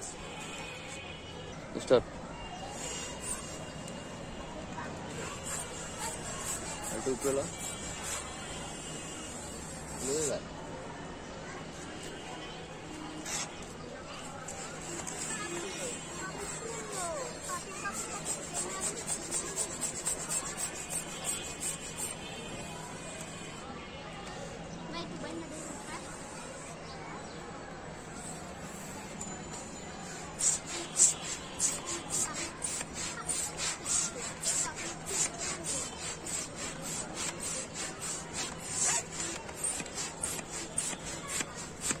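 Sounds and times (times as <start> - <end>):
balloon pump rasping hiss: 2.6 - 10.4, 12.9 - 23.6, 25.4 - 26.7, 27.9 - 42.0.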